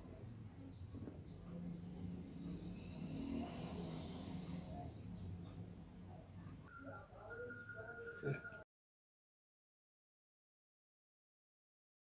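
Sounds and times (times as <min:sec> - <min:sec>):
faint high chirping: 0:04.7 - 0:08.6.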